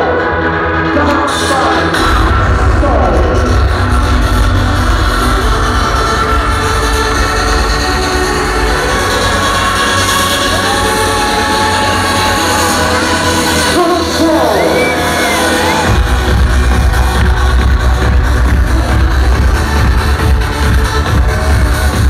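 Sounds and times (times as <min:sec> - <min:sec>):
electronic dance music: 0:00.0 - 0:22.0.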